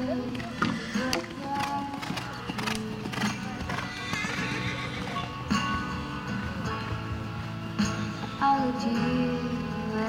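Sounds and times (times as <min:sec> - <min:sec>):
horse hooves thudding on sand: 0:00.2 - 0:04.4.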